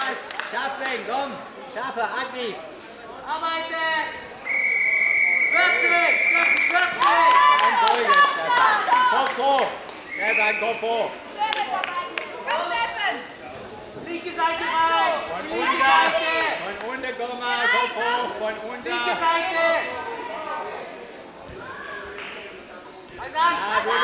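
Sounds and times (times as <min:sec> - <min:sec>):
referee's whistle long blast: 0:04.4 - 0:06.8.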